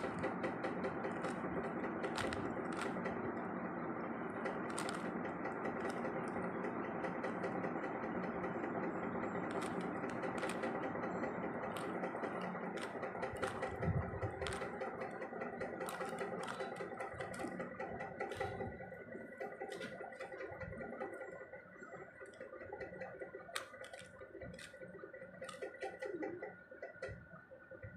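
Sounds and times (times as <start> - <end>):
puzzle cube clicking: 0.0 - 3.2, 4.4 - 6.4, 9.4 - 18.8, 23.5 - 24.8, 25.4 - 26.2
steady background hum: 0.0 - 27.9.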